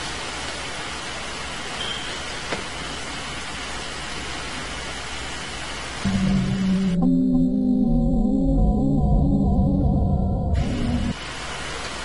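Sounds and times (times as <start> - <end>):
camcorder recording hiss: 0.0 - 6.9, 10.6 - 12.0.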